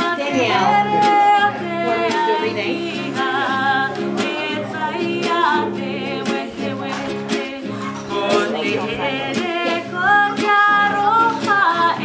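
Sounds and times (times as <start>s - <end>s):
acoustic guitar: 0.0s - 12.0s
woman singing: 0.0s - 12.0s.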